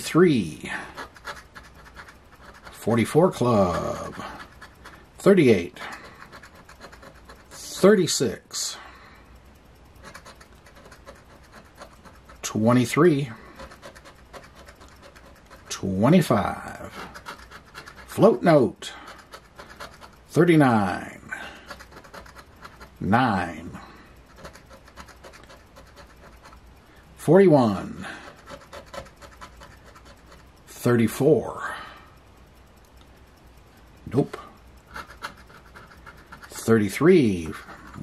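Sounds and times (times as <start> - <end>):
coin scratching lottery ticket: 0.0 - 8.4, 10.0 - 26.6, 27.6 - 31.1, 34.1 - 38.0.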